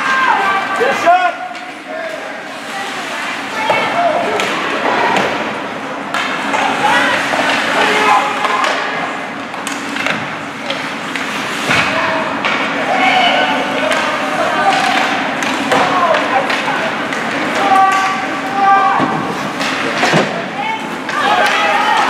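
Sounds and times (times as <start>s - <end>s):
spectators chatter echoing: 0.0s - 22.0s
sticks and puck on ice: 6.1s - 20.3s, 20.9s - 22.0s.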